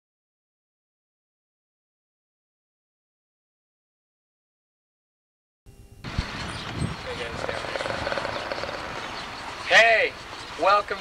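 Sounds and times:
traffic rumble: 6.0s - 11.0s
faint voices: 6.9s - 9.0s.

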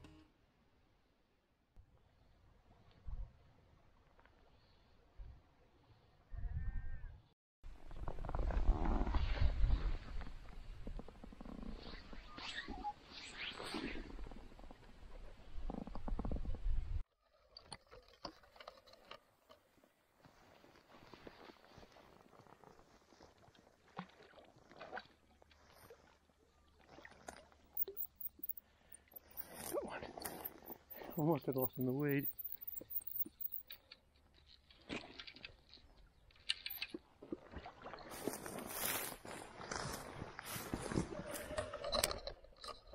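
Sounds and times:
wind rumbling on microphone: 6.3s - 12.9s, 13.9s - 17.0s.

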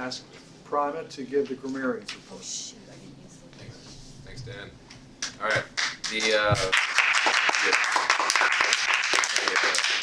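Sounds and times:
audience clapping: 5.2s - 10.0s.

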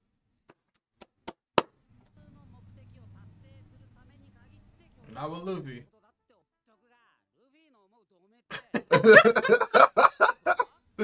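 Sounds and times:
hearty laughter: 8.5s - 10.7s.

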